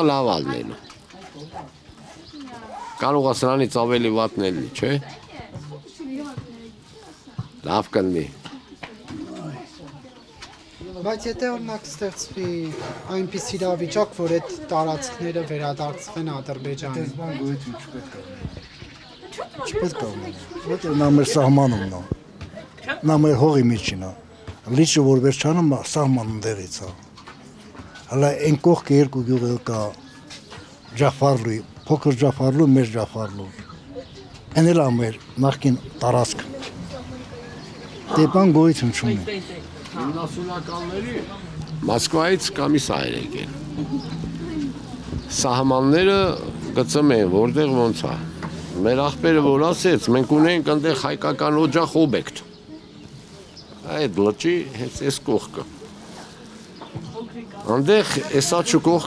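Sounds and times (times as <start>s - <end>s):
faint outdoor background: 0.0s - 59.0s
man speaking: 40.0s - 43.7s, 45.3s - 52.5s.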